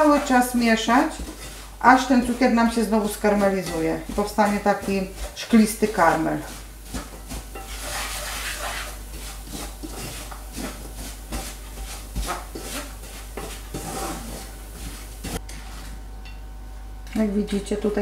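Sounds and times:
wooden spatula scraping frying pan: 0:00.0 - 0:16.0.

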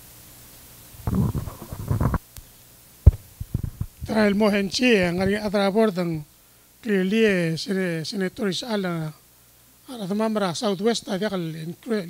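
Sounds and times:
microphone handling rustle: 0:01.0 - 0:06.2
microphone set down on table: 0:03.1 - 0:04.1.

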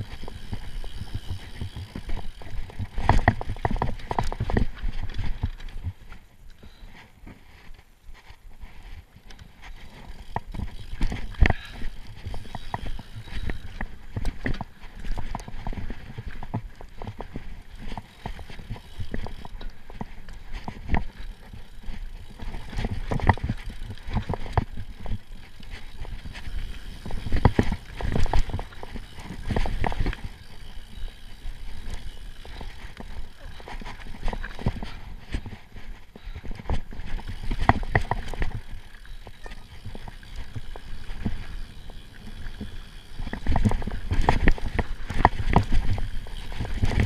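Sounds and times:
bike knocks and clatter: 0:00.0 - 0:06.0, 0:36.2 - 0:47.0
bike tyres rolling over trail: 0:00.0 - 0:47.0.

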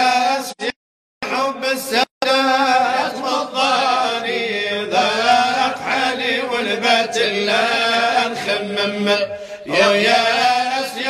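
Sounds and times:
person singing devotional chant: 0:00.0 - 0:11.0.

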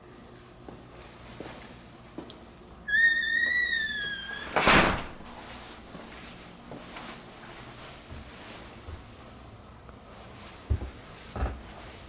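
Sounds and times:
door hinges squeaking: 0:02.9 - 0:05.2
door shutting thump: 0:04.4 - 0:05.2.

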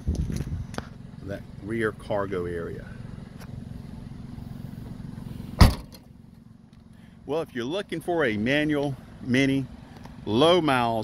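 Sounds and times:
steady low rumble: 0:00.0 - 0:11.0
car hatch slamming shut: 0:05.6 - 0:06.0.

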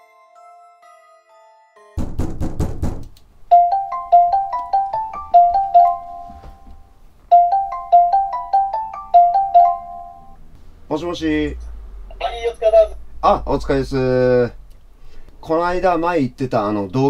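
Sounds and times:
phone ringing tone melody: 0:03.5 - 0:10.4.

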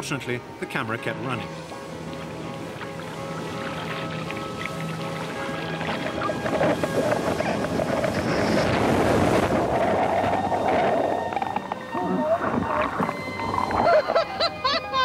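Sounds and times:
background music: 0:00.0 - 0:15.0
seawater rushing over camera: 0:01.4 - 0:14.4.

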